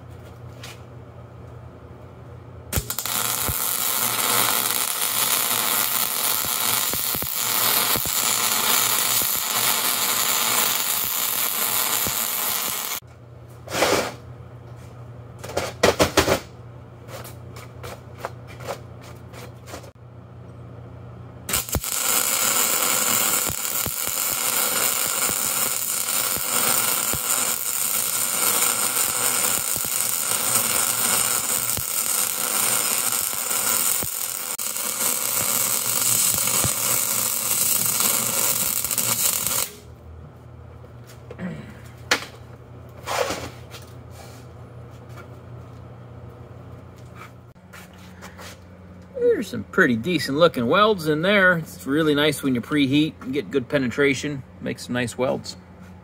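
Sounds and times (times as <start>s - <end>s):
welder arc crackling: 2.7s - 13.0s, 21.5s - 39.8s.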